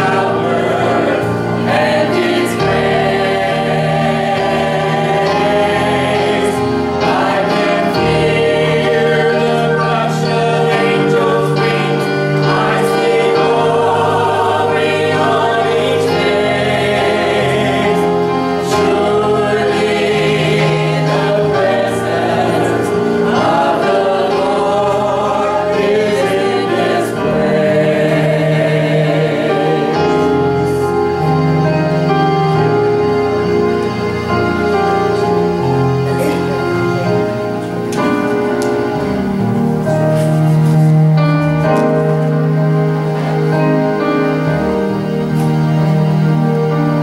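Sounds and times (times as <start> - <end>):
group singing a hymn in harmony: 0.0 - 47.0
keyboard sustained notes: 0.0 - 47.0.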